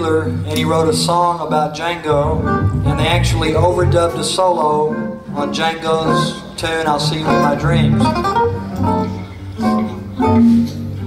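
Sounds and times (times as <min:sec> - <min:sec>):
acoustic guitar plucked notes: 0:02.0 - 0:11.0
held low bass note: 0:02.1 - 0:04.2.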